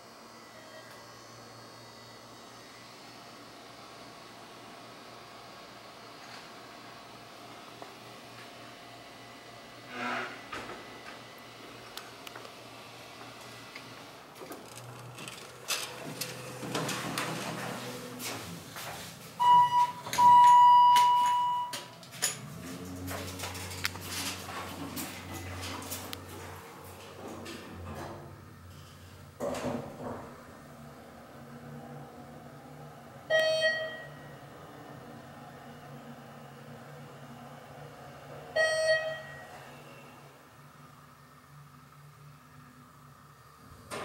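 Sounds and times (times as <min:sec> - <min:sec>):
elevator doors sliding: 0:14.4 - 0:18.7.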